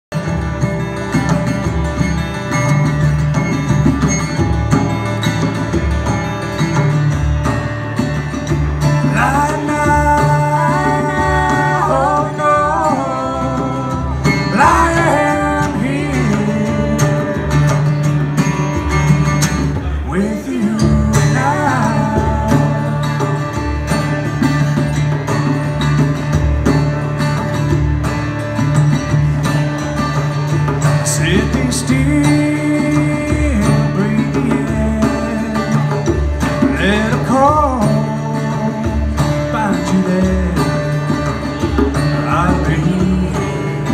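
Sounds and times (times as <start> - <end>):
acoustic guitars strumming: 0.1 - 43.9
djembe beat: 0.2 - 43.9
person singing: 9.1 - 18.0.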